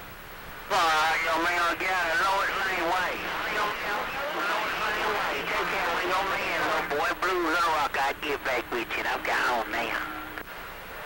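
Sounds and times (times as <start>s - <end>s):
voice over radio receiver: 0.7s - 10.1s.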